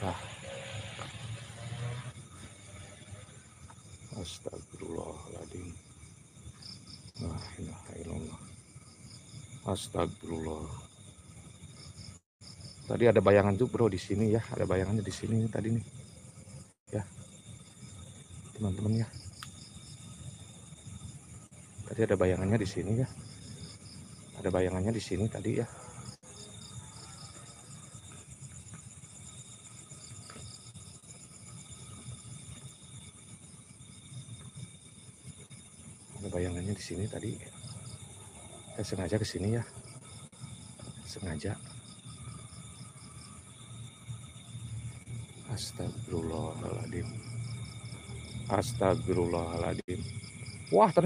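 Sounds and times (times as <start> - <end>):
crickets chirping: 0.0 - 51.0.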